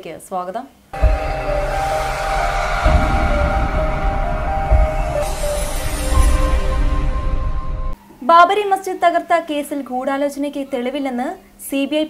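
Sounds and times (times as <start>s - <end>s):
dramatic electronic music: 1.0s - 8.0s.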